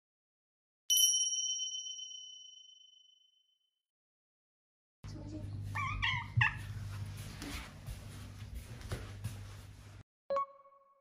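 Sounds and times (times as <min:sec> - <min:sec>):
bright bell-like chime: 0:00.9 - 0:03.5.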